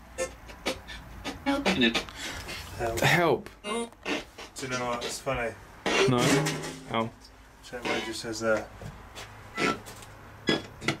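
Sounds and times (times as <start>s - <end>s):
low steady hum: 5.5s - 8.2s.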